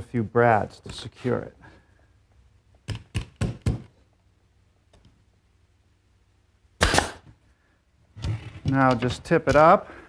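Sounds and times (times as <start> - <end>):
brad nailer shots: 6.8 - 7.3.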